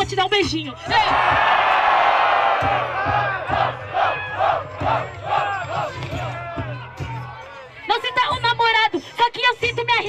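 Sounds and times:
crowd shouting in rhythm: 0.8 - 7.7.

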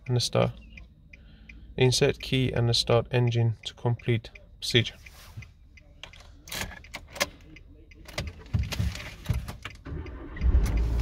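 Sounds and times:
car engine starting and idling: 5.6 - 11.0
car keys jangling in ignition: 6.0 - 7.4.

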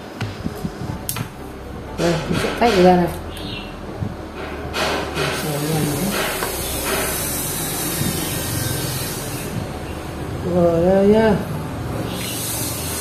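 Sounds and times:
steady hiss: 4.0 - 10.6.

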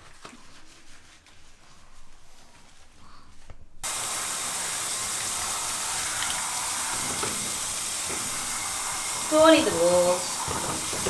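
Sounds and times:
shower head spraying water: 3.8 - 11.0.

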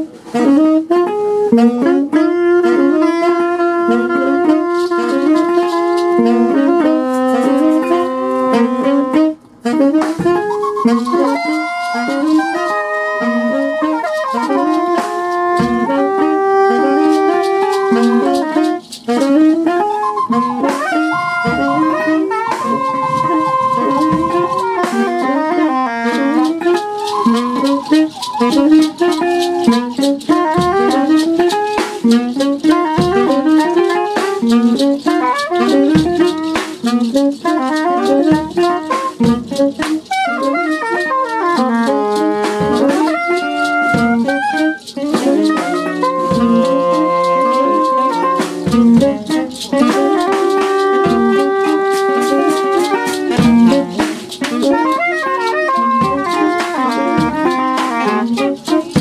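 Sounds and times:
free jazz saxophones: 0.0 - 59.0.

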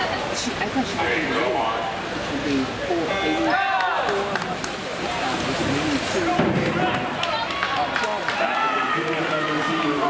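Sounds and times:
spectators shouting and cheering: 3.3 - 4.5, 6.2 - 10.0
long drawn-out shout: 7.3 - 10.0.

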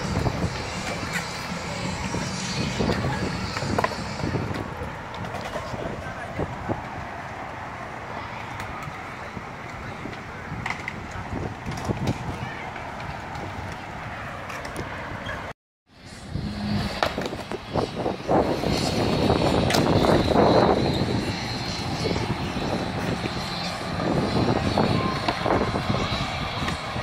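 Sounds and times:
skateboard wheels rolling on concrete: 0.0 - 27.0
skateboard clacks: 2.8 - 6.0, 18.8 - 21.0.

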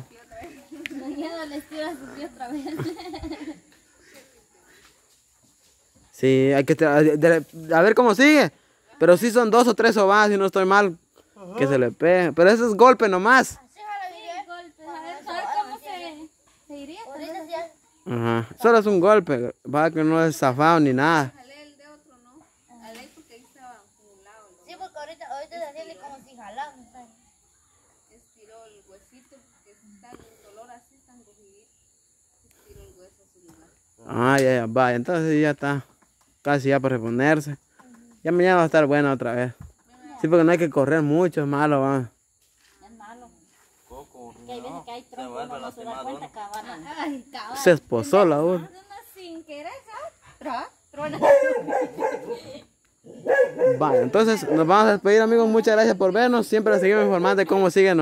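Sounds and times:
dog barking and yipping: 51.1 - 54.8
people talking: 53.6 - 58.0.

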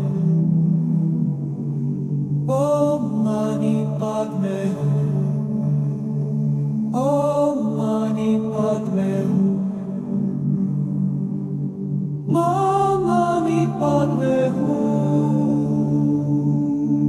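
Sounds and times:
low sustained drone: 0.0 - 17.0
person chanting: 2.5 - 6.3, 6.9 - 10.5, 12.3 - 17.0.

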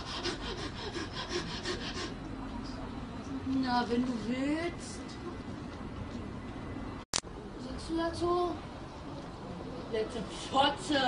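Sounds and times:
rapid rubbing strokes: 0.0 - 2.2.

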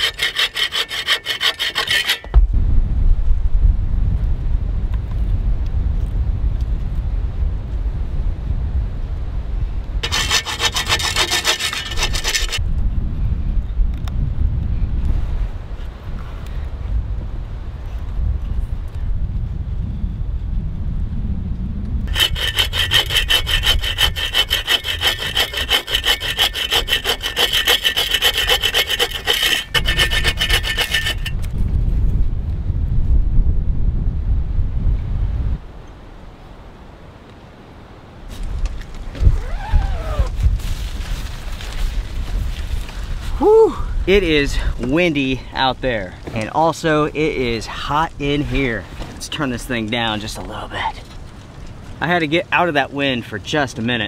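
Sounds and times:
hand saw cutting wood: 0.0 - 2.4, 10.0 - 12.6, 22.1 - 31.5
gusty wind on microphone: 2.2 - 52.1.

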